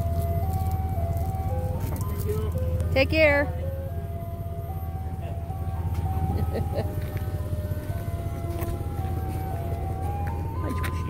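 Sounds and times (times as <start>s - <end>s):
ice cream truck chime music: 0.0s - 11.0s
truck engine idling: 0.0s - 11.0s.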